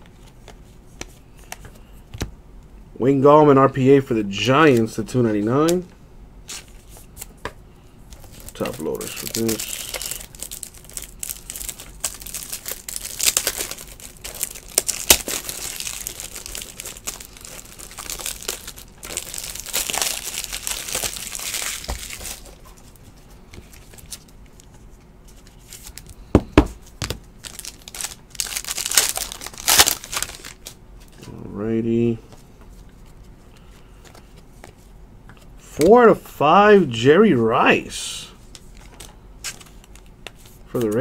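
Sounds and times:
plastic shrink-wrap crinkling: 8.2s - 22.9s, 27.0s - 30.8s.

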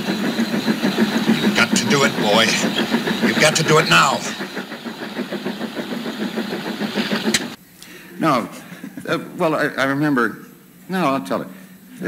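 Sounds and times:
engine-like mechanical rumble: 0.0s - 7.6s.

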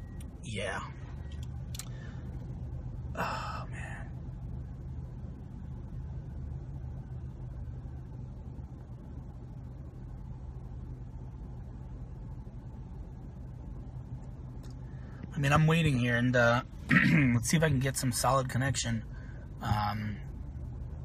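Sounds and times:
car engine low hum: 0.0s - 21.0s.

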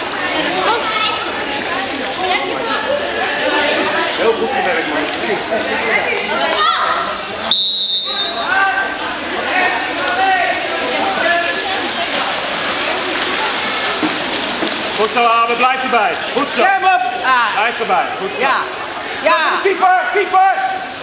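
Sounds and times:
water splashing: 0.0s - 21.0s
people shouting: 6.4s - 7.2s, 8.1s - 11.6s
referee's whistle blast: 7.5s - 8.5s.

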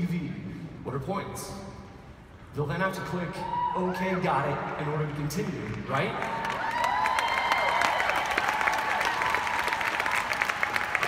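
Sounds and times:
audience applause: 5.6s - 11.0s
people cheering: 5.9s - 11.0s.

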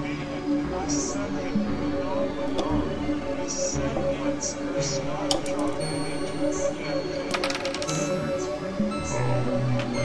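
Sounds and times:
synthesizer drone: 0.0s - 10.0s.

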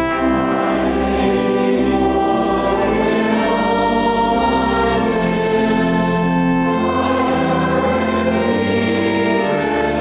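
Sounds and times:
choir singing a hymn: 0.0s - 10.0s
instrumental accompaniment: 0.0s - 10.0s.

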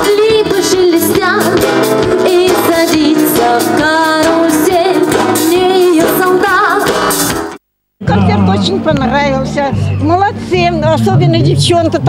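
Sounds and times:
drum kit beat: 0.0s - 7.6s
woman singing with vibrato: 2.2s - 6.9s.

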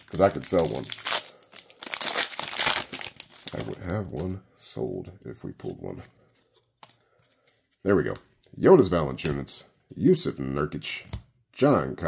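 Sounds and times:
wrapper being torn and crinkled: 0.0s - 3.8s.

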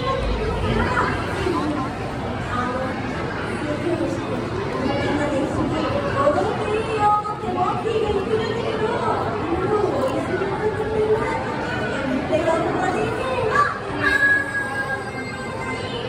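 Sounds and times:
chatter of many voices echoing: 0.0s - 16.0s.

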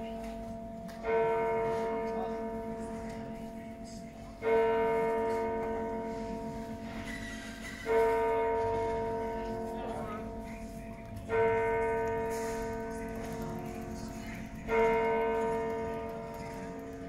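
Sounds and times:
church bell tolling: 0.0s - 17.0s.

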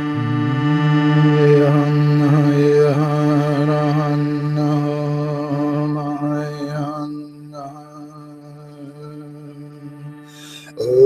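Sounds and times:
steady low drone: 0.0s - 6.0s
chanted vocal line: 0.0s - 11.0s.

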